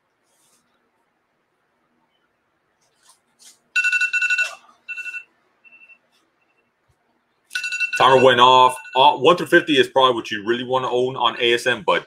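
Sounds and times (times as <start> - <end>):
electronic timer alarm beeping: 3.8 - 6.7, 7.6 - 9.2.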